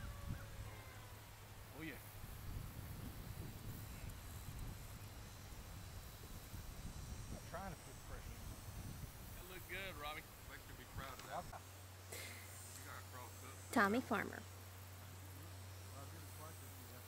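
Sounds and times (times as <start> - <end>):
wind rumbling on microphone: 0.0 - 11.5.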